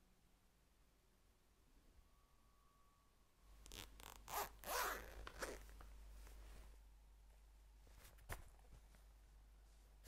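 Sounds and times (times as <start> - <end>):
zip pulled open: 3.6 - 5.7.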